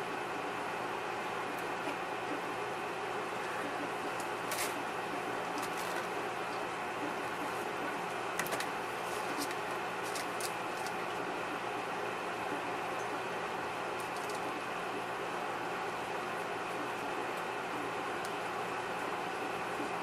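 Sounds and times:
mechanical room hum: 0.0s - 20.0s
faint clicks and rustles: 8.4s - 11.1s.

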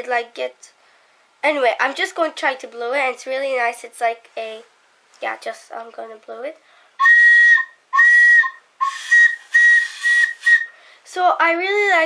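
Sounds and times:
homemade whistle toots: 7.0s - 10.8s.

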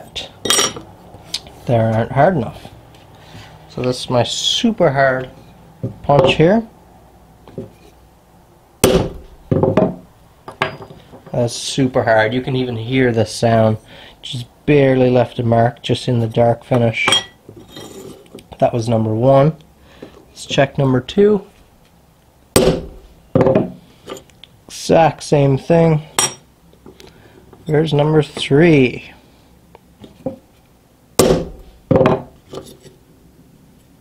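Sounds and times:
hammer striking steel punch: 8.8s - 9.9s, 22.6s - 23.1s, 31.2s - 32.2s.

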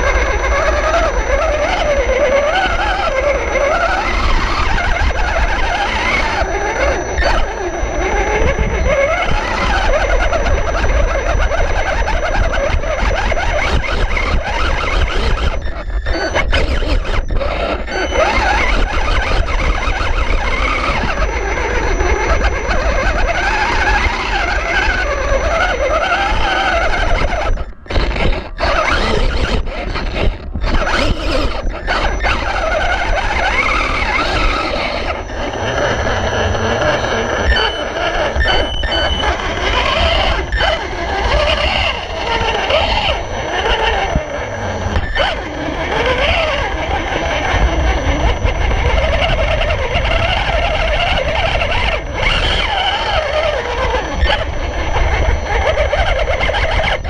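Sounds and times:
electric motor and gearbox whining: 0.0s - 57.0s.

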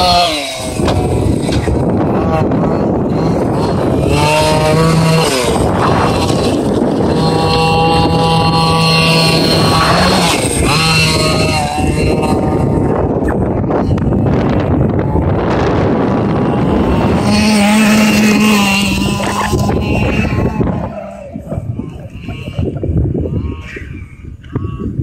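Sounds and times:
rc buggy engine revving: 0.0s - 25.0s
wind on microphone: 0.0s - 25.0s.

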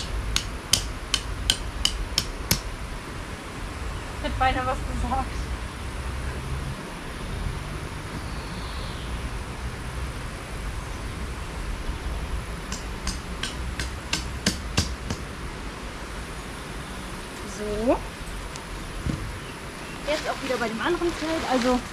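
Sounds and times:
steady low rumble: 0.0s - 21.9s.

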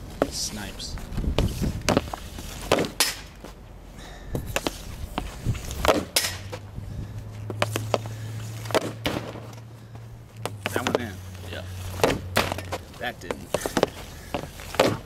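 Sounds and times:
hockey stick slapping pucks: 1.9s - 3.4s, 4.5s - 6.6s, 7.5s - 9.6s, 10.4s - 11.2s, 11.9s - 15.0s.

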